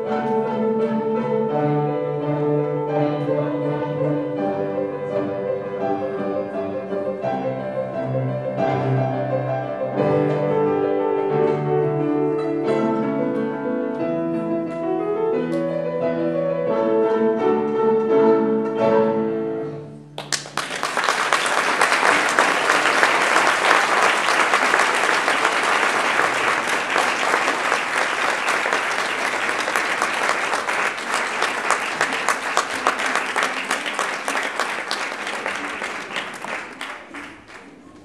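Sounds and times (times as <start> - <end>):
audience applauding: 20.2 - 38.0.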